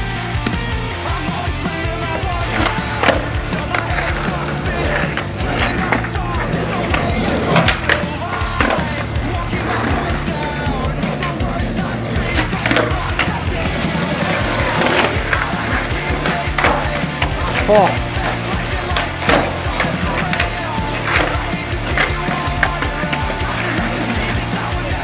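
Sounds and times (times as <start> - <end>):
background music: 0.0 - 25.0
skateboard wheels rolling: 0.0 - 25.0.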